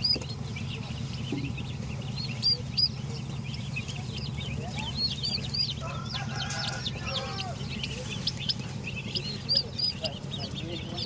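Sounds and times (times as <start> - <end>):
poults and ducklings peeping: 0.0 - 11.0
steady low hum: 0.0 - 11.0.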